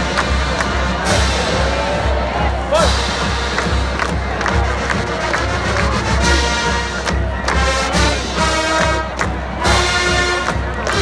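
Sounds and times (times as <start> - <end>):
marching band playing: 0.0 - 11.0
stadium crowd cheering: 0.0 - 11.0.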